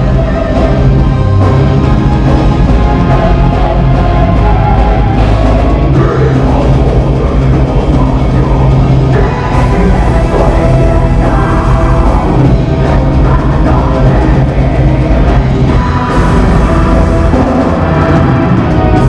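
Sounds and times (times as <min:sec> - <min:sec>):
heavy metal band playing live: 0:00.0 - 0:19.0.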